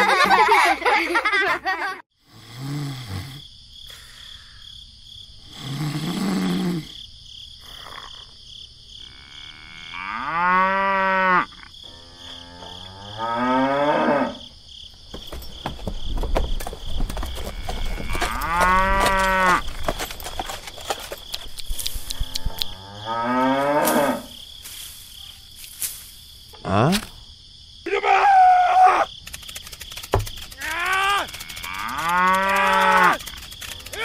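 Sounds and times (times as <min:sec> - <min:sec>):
cattle mooing: 0:17.5 - 0:19.6, 0:30.6 - 0:33.2.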